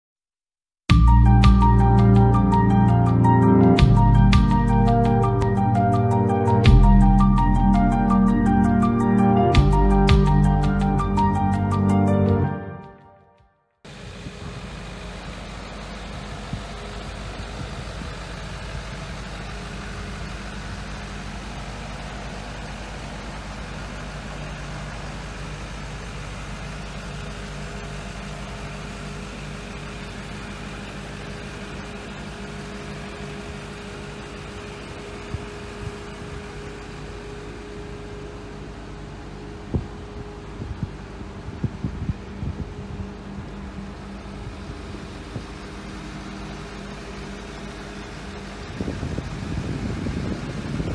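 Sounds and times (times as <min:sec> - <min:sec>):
diesel engine idling: 0:00.9 - 0:12.7, 0:13.9 - 0:50.9.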